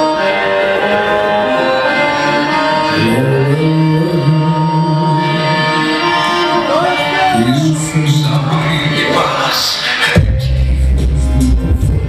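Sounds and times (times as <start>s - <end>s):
live band music with held notes: 0.0s - 12.0s.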